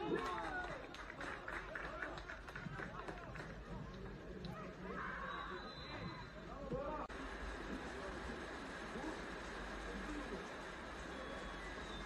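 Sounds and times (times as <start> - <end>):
outdoor field ambience: 0.0 - 12.0
footballers calling and shouting: 1.8 - 12.0.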